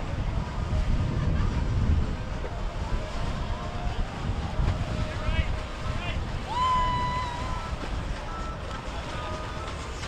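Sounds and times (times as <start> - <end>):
boat engines rumbling: 0.0 - 10.0
water: 0.0 - 10.0.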